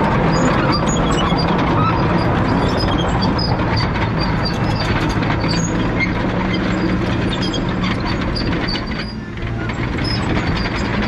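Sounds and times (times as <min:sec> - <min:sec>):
diesel engine running: 0:00.0 - 0:11.0
short high squeaks: 0:00.4 - 0:09.3.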